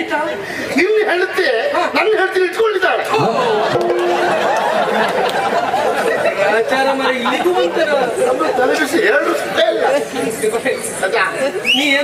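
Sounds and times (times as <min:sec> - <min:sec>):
men talking: 0:00.5 - 0:12.0.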